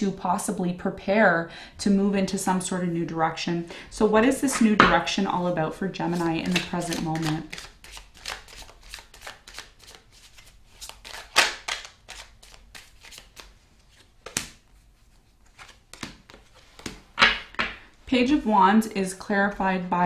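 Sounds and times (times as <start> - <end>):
cards shuffling: 6.1 - 17.8
card slaps: 6.4 - 10.0, 11.0 - 13.5, 14.2 - 14.6, 15.6 - 17.8.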